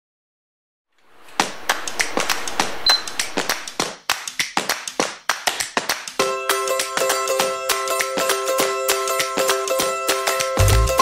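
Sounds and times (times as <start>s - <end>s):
steady hiss: 1.0s - 3.8s
fast irregular sharp clicks: 1.3s - 6.2s.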